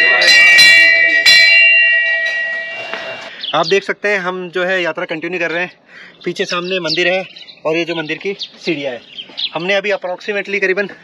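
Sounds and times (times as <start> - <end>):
brass bell ringing: 0.0 - 3.3.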